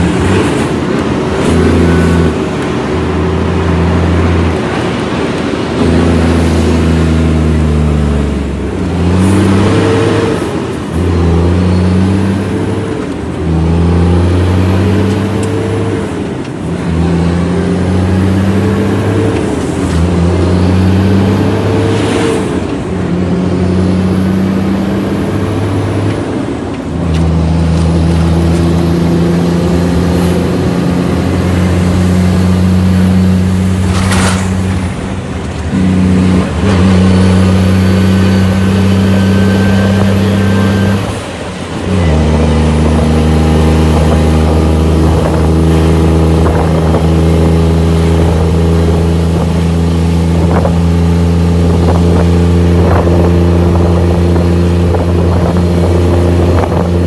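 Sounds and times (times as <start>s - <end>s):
truck diesel engine: 0.0s - 57.0s.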